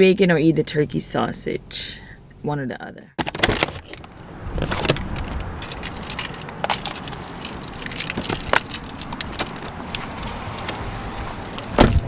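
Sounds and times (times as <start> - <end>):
rustling and clicks: 3.2 - 12.0
keys jingling: 3.3 - 12.0.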